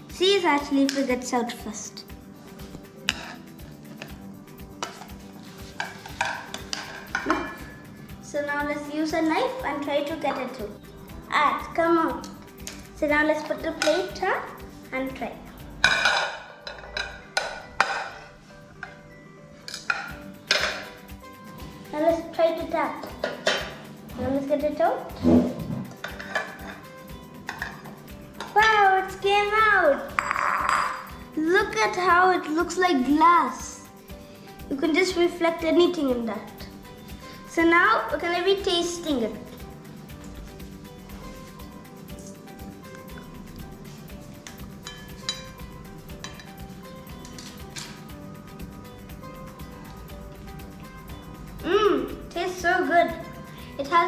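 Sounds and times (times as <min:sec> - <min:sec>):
soft background music: 0:00.0 - 0:54.0
knife scraping ceramic bowl: 0:03.1 - 0:03.5.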